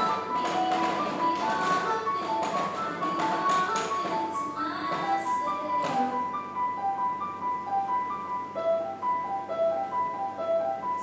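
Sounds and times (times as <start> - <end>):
melody over light tapping beats: 0.0 - 11.0.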